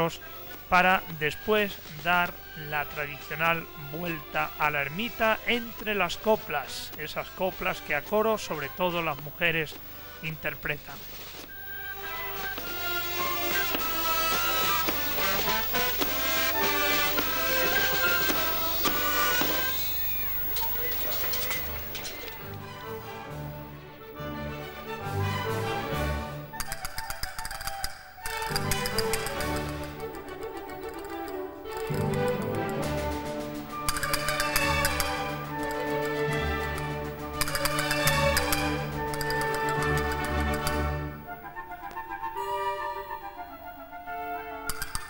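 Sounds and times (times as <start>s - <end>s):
brass and woodwind band playing: 11.3s - 26.5s, 28.2s - 44.7s.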